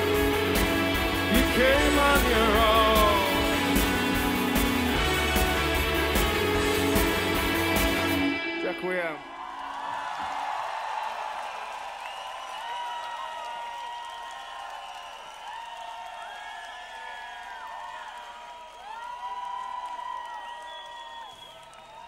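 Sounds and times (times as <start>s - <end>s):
crowd cheering: 0.0s - 22.0s
long whistles: 12.0s - 13.0s, 14.0s - 15.6s, 20.3s - 22.0s.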